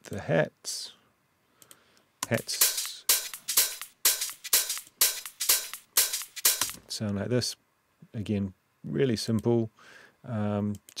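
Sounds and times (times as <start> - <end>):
electronic hi-hat pattern: 2.2 - 6.8.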